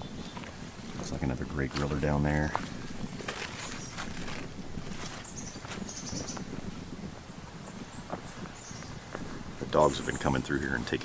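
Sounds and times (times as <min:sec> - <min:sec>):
footsteps on garden path: 0:00.0 - 0:11.0
plants rustling: 0:00.0 - 0:11.0
faint high bird chirps: 0:05.1 - 0:06.4.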